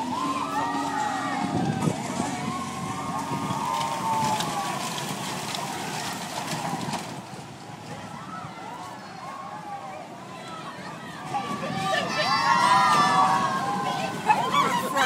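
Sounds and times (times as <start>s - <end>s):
riders screaming and whooping: 0.0s - 7.0s, 7.9s - 15.0s
roller coaster cars rattling on track: 0.0s - 15.0s.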